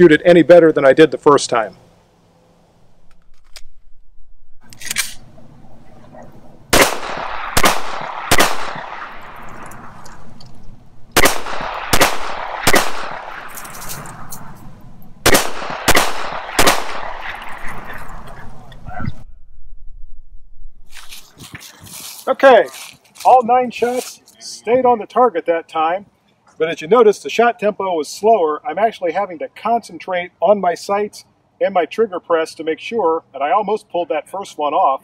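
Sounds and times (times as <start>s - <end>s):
pistol shots with echo: 6.7s - 9.6s, 11.2s - 14.3s, 15.2s - 17.8s.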